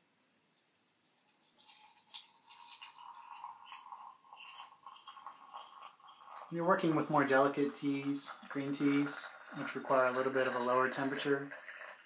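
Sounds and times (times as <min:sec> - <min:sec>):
water pouring into teapot: 0:00.8 - 0:12.0.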